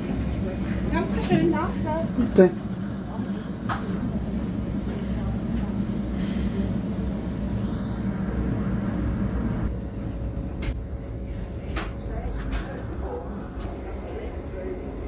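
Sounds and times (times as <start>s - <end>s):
electric train rumbling on track: 0.0s - 15.0s
faint steady hum: 0.0s - 15.0s.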